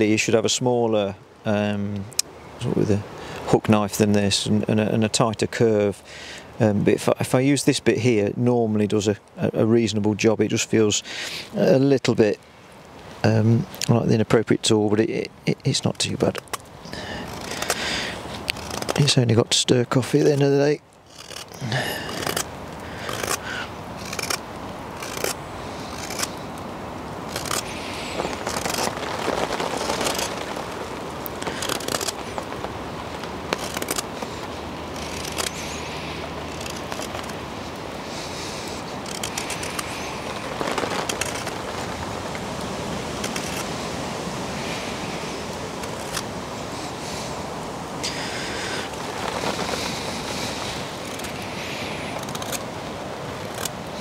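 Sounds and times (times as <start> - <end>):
steady background hiss: 0.0 - 54.0
knife scraping wood: 16.4 - 19.1, 21.0 - 24.4, 25.0 - 26.4, 27.3 - 30.5, 31.4 - 32.5, 33.3 - 35.8, 36.5 - 37.4, 38.2 - 40.0, 40.9 - 41.6, 52.0 - 52.6.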